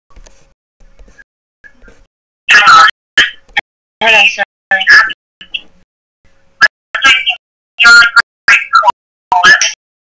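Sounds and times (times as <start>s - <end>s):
choppy voice fragments on phone line: 2.5s - 5.8s, 6.9s - 9.8s.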